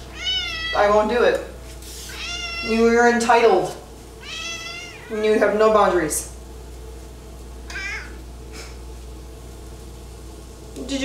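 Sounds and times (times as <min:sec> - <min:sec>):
cat meowing: 0:00.0 - 0:00.8, 0:02.1 - 0:02.9, 0:04.2 - 0:05.1, 0:07.7 - 0:08.2.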